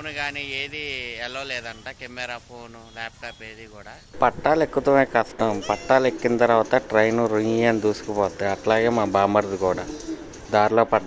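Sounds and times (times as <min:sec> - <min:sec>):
person's voice: 0:00.0 - 0:11.0.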